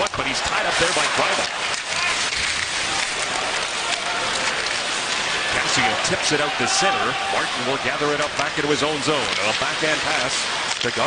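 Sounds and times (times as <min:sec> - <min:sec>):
crowd noise: 0:00.0 - 0:11.0
skates on ice: 0:00.0 - 0:11.0.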